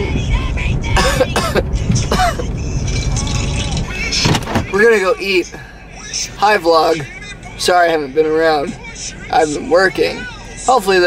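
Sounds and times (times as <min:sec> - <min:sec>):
car cabin road rumble: 0:00.0 - 0:11.0
person coughing: 0:01.0 - 0:02.5.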